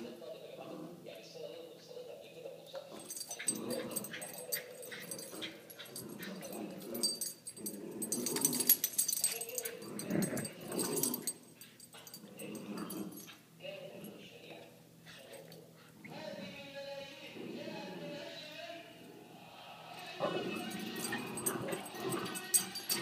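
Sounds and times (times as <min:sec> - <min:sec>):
puppies vocalizing: 0:02.8 - 0:11.3.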